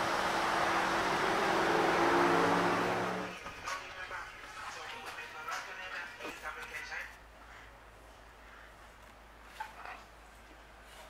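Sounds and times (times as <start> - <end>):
vehicle engine passing: 0.0 - 3.4
road traffic: 0.0 - 11.0.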